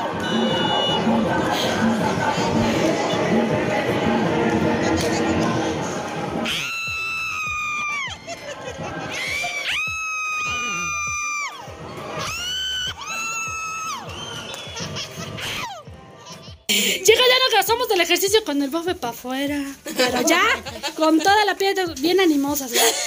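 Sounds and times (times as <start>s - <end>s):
crowd cheering and shouting: 0.0s - 16.0s
dance music: 0.0s - 23.0s.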